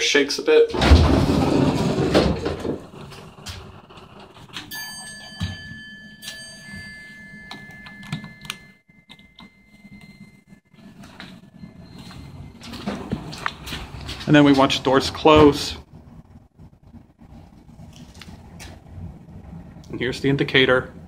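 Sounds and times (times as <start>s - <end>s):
elevator rumbling: 0.0s - 21.0s
elevator doors sliding open: 0.6s - 6.9s, 10.8s - 15.8s.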